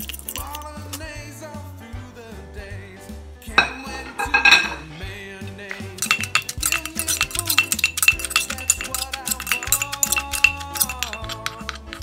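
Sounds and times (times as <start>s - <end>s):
utensils clinking against dish: 0.0s - 1.0s, 3.5s - 12.0s
background music: 0.0s - 12.0s.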